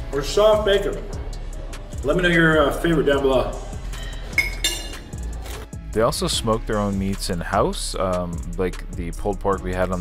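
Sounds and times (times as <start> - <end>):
background music: 0.0 - 10.0
fork clinking on plate: 4.0 - 5.0.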